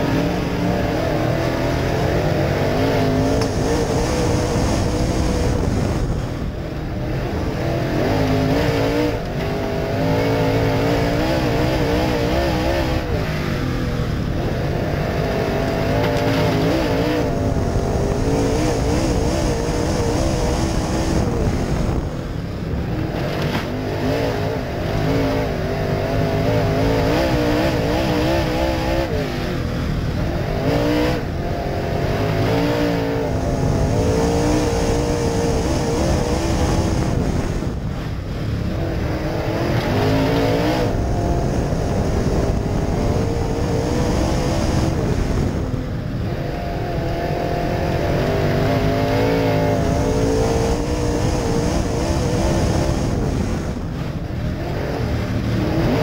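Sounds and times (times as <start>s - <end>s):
race car engine: 0.0s - 56.0s.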